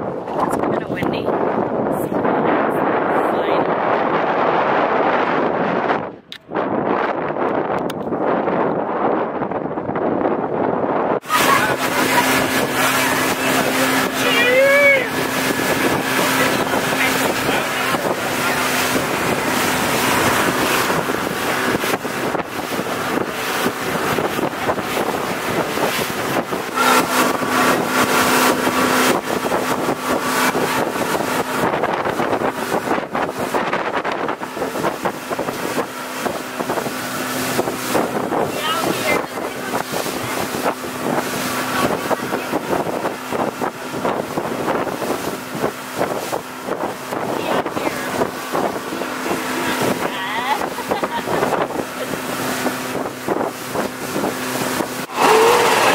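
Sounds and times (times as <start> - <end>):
motorboat engine drone: 0.0 - 55.9
rushing wind and water: 0.0 - 55.9
wind buffeting microphone: 0.0 - 55.9.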